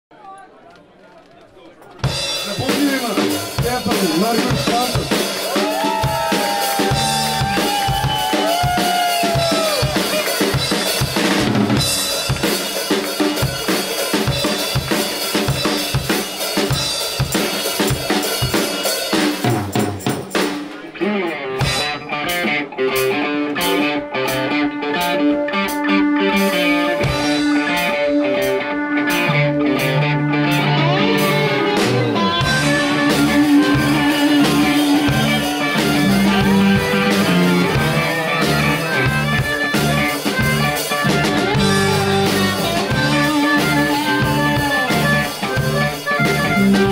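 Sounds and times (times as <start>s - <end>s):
bass guitar: 2.0s - 46.9s
drum kit: 2.0s - 46.9s
electric guitars: 2.0s - 46.9s.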